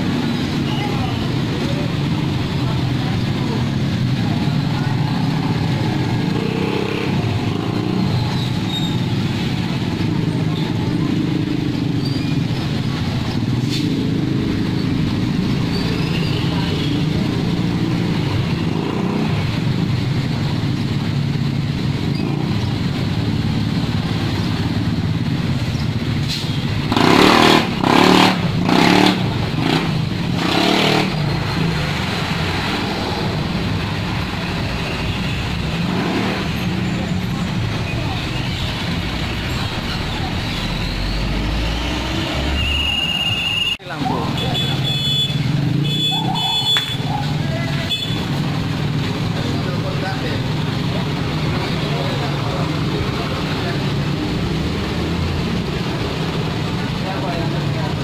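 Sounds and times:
traffic hum: 0.0s - 58.0s.

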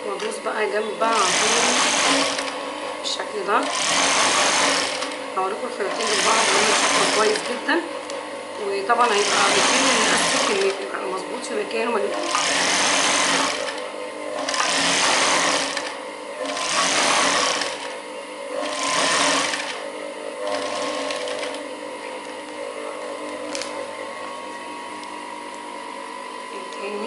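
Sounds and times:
steady low machine hum: 0.0s - 27.0s
sewing machine stitching: 1.1s - 2.6s, 3.5s - 5.2s, 5.8s - 7.6s, 9.0s - 10.8s, 12.0s - 13.8s, 14.4s - 18.0s, 18.6s - 19.8s, 20.4s - 21.6s.

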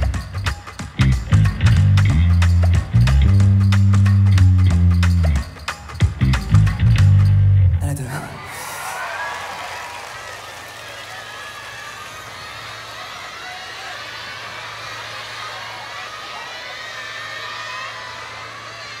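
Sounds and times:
crowd cheering and screaming: 8.0s - 19.0s.

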